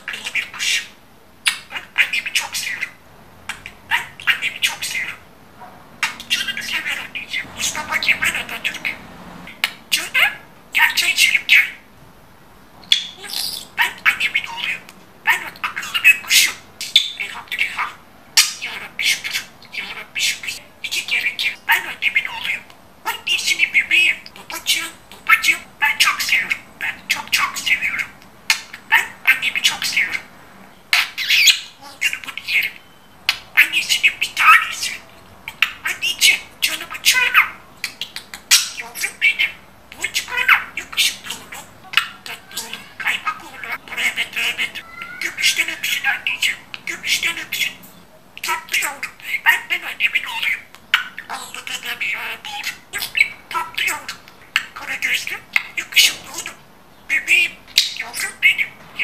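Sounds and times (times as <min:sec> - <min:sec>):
budgerigar chattering: 0:00.0 - 0:05.2, 0:06.0 - 0:11.8, 0:12.9 - 0:30.3, 0:30.9 - 0:47.8, 0:48.4 - 0:59.0.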